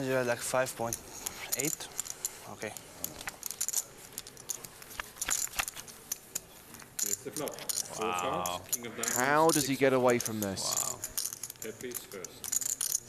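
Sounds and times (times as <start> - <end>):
poker chips clicking: 0.8 - 13.0.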